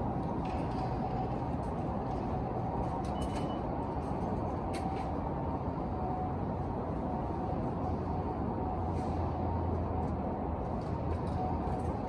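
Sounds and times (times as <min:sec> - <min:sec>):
station concourse rumble: 0:00.0 - 0:12.0
ticket gate beep: 0:03.1 - 0:03.8.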